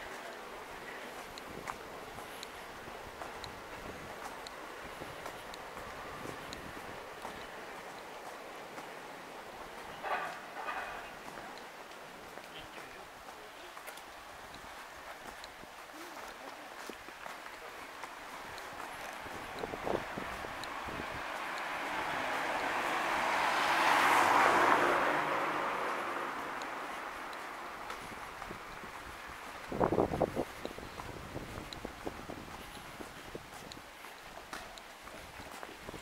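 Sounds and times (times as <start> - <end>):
broad rush of noise: 0.0 - 36.0
footsteps on paving stones: 0.0 - 36.0
voices: 0.0 - 36.0.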